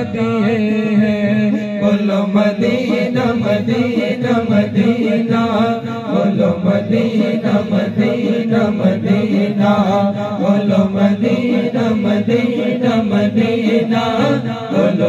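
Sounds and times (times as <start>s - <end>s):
men singing together: 0.0s - 15.0s.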